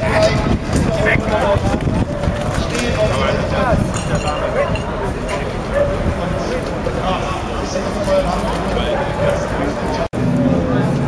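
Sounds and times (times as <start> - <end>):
indistinct voices talking: 0.0 - 11.0
steady background noise: 0.0 - 11.0.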